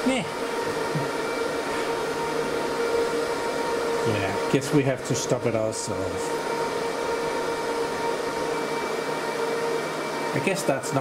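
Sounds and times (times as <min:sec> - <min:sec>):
server cooling fans whining: 0:00.0 - 0:11.0.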